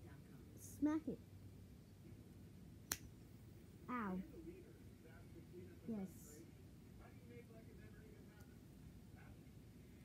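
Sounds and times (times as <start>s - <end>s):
hand slapping skin: 2.8s - 3.1s.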